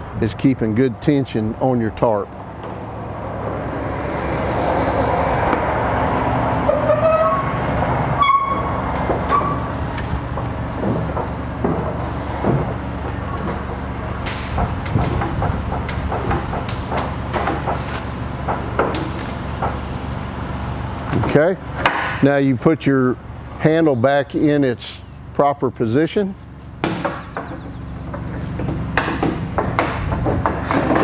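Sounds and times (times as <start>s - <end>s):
short metal squeaks: 6.6s - 9.9s.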